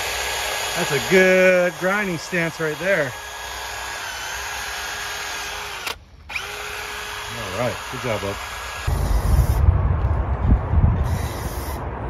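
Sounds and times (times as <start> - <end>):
drill with abrasive wheel grinding metal: 0.0 - 9.6, 11.0 - 12.0.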